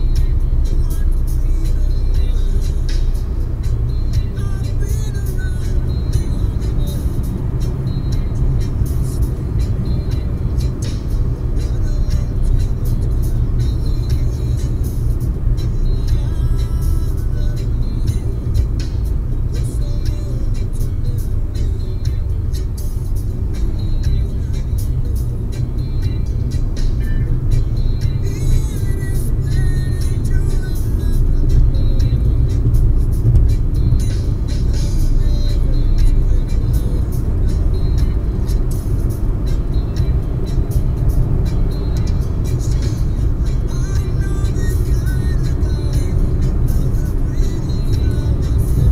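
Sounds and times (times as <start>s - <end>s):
car road and engine rumble: 0.0s - 48.9s.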